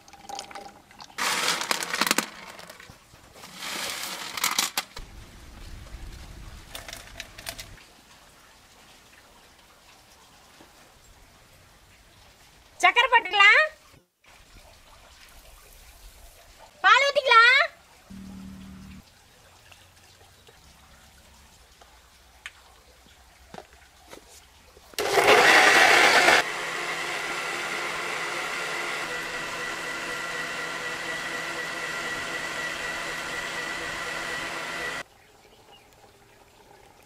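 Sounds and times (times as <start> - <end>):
mixer-grinder whirring: 1.2 - 4.7, 25.0 - 35.0.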